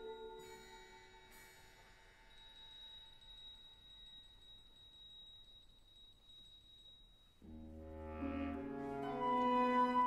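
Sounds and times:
quiet orchestral music: 7.4 - 10.0.

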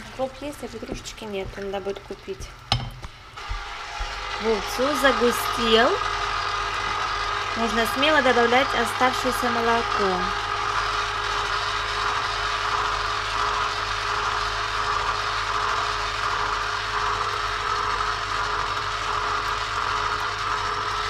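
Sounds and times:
motor humming: 3.2 - 21.0.

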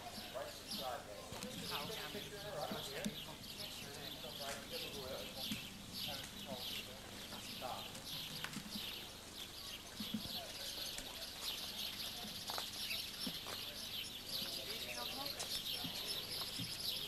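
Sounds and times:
faint voices: 0.0 - 17.0
small birds chirping: 0.0 - 17.0.

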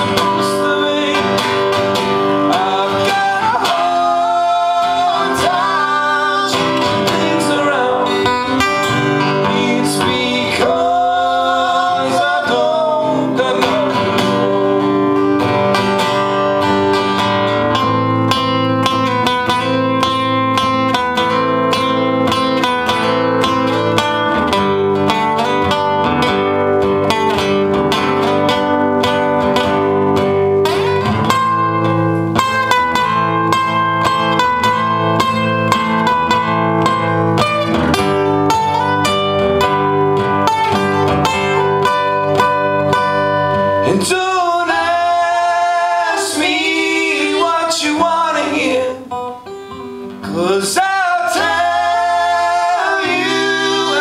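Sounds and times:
acoustic guitars strumming: 0.0 - 54.0.

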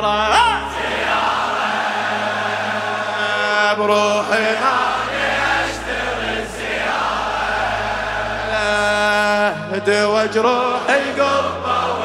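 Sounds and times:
man reciting: 0.0 - 0.8, 3.2 - 4.9, 8.5 - 11.7
men chanting: 0.0 - 12.0.

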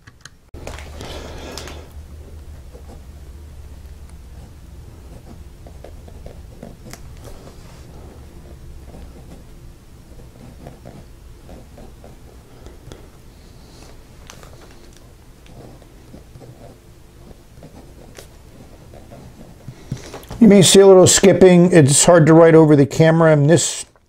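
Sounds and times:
pen nib scratching on paper: 2.2 - 20.4.

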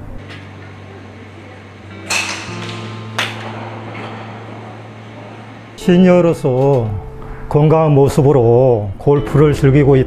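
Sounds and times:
steady low hum: 0.0 - 10.0
golf club striking ball: 2.0 - 5.8.

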